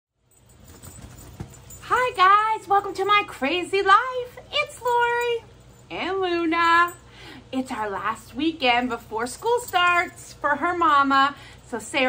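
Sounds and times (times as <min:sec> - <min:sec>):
woman speaking: 0:01.8 - 0:12.0.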